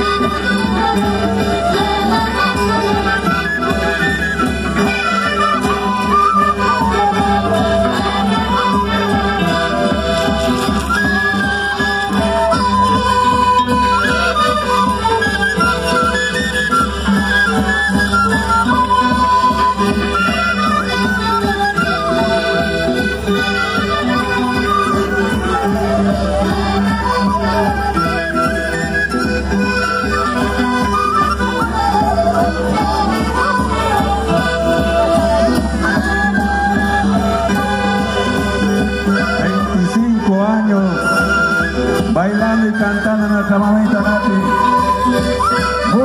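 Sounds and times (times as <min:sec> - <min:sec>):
traditional melody: 0:00.0 - 0:46.0.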